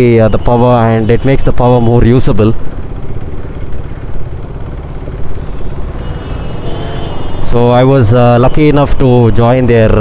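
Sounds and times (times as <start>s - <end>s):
motorcycle engine rumbling: 0.0s - 10.0s
road and traffic noise: 0.0s - 10.0s.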